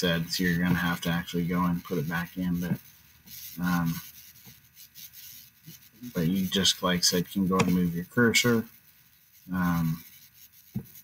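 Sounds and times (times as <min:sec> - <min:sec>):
soft handling sounds: 0:00.0 - 0:11.0.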